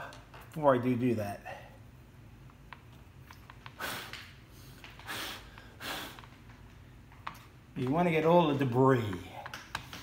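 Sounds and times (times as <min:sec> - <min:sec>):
soft puffs of breath: 0:03.7 - 0:06.3.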